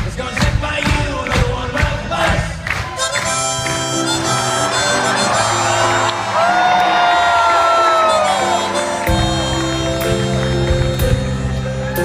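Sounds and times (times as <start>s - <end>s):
accordion chords: 1.9s - 12.0s
band with drums and bass: 8.0s - 12.0s.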